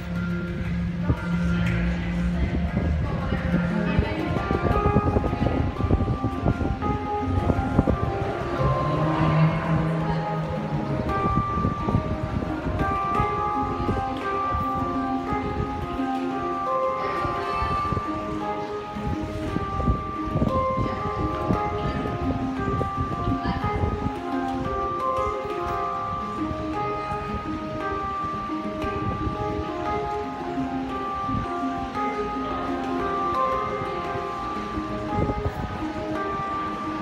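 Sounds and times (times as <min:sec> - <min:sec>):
handpan melody: 0:00.0 - 0:37.0.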